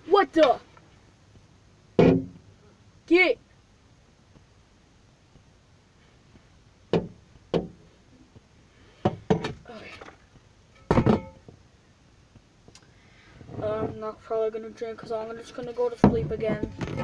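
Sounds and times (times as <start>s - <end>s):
knocks and thumps inside a car: 6.9s - 7.8s.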